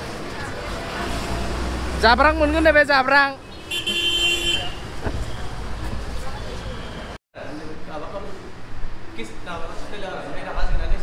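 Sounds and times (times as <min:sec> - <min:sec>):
passing vehicles: 0:00.0 - 0:10.2
vehicle horn: 0:03.4 - 0:05.5.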